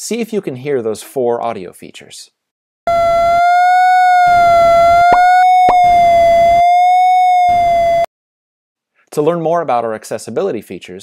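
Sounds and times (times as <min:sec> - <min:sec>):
synthesized tone: 0:02.9 - 0:08.1.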